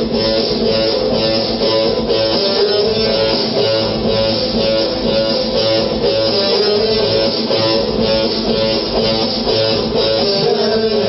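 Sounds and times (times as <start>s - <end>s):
electric guitar playing: 0.0s - 11.0s.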